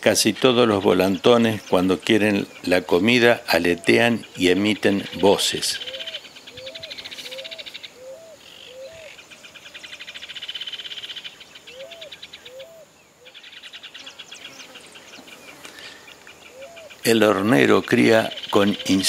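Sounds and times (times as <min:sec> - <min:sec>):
fledgling bird buzzy trills: 0:00.6 - 0:19.0.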